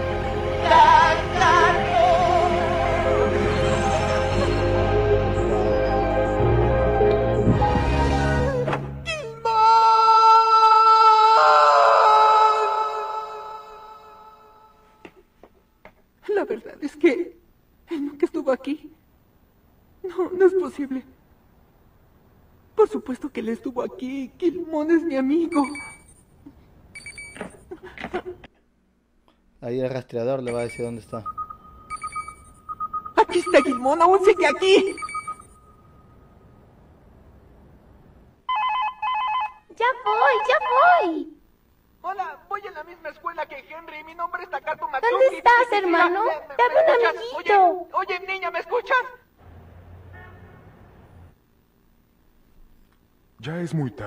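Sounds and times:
cluster of extra tones: 0:30.4 - 0:36.6
telephone ringing: 0:30.5 - 0:36.1, 0:38.5 - 0:41.0.

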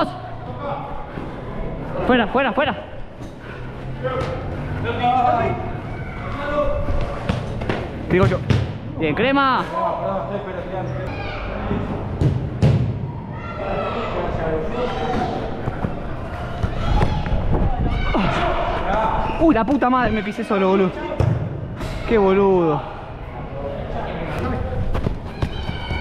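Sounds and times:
players shouting: 0:13.0 - 0:21.0, 0:25.2 - 0:26.0.

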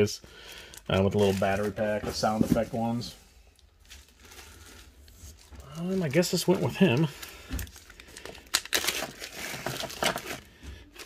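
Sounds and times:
plastic bag crinkling: 0:00.5 - 0:02.0, 0:02.7 - 0:11.0.

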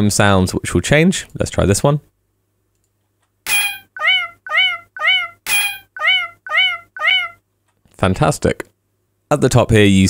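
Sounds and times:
sharper metronome accent: 0:03.5 - 0:06.9
metronome meows: 0:03.5 - 0:07.4.

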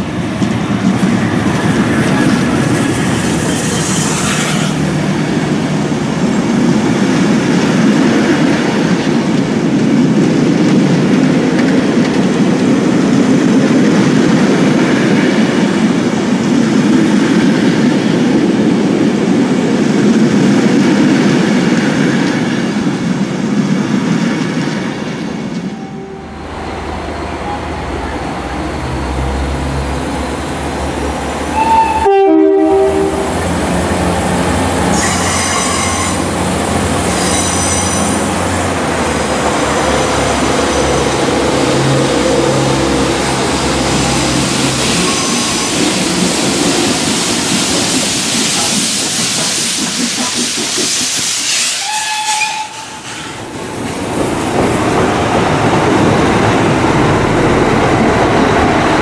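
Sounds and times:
diesel train running: 0:00.0 - 0:59.0
high-pitched train squeals: 0:01.9 - 0:04.9, 0:34.9 - 0:36.4, 0:37.0 - 0:38.4, 0:44.8 - 0:45.9, 0:50.2 - 0:53.5
train horn blast: 0:25.7 - 0:26.5, 0:31.5 - 0:33.4, 0:34.9 - 0:36.4, 0:51.7 - 0:53.1.

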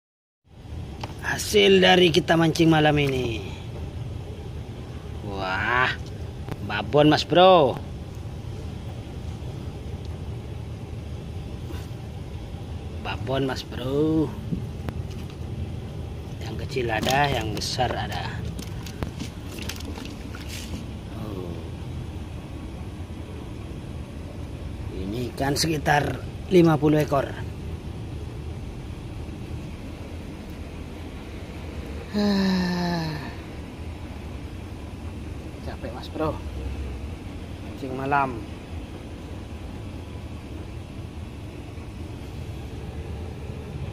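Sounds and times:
low mechanical hum: 0:00.5 - 0:43.9
man sighing: 0:32.1 - 0:33.5.

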